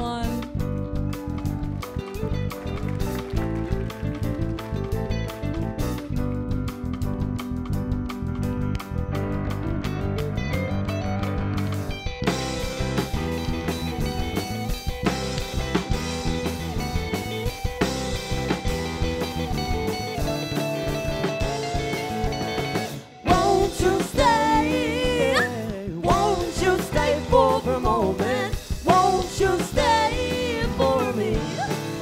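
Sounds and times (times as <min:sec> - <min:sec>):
drum kit: 0:00.0 - 0:32.0
live band playing: 0:00.0 - 0:32.0
person singing with vibrato: 0:23.3 - 0:32.0.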